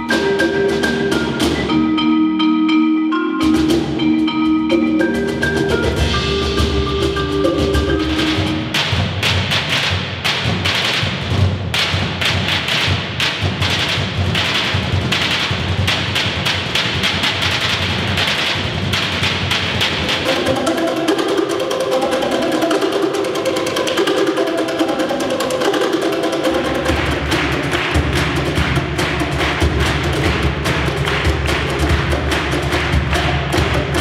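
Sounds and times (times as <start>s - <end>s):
hand drums struck with sticks: 4.8s - 34.0s.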